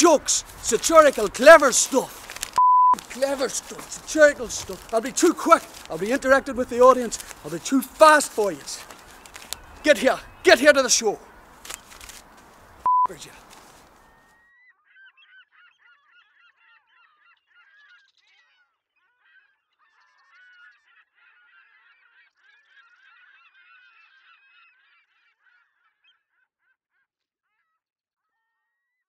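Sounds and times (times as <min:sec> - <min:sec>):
chorus of birds calling: 0:00.0 - 0:26.3.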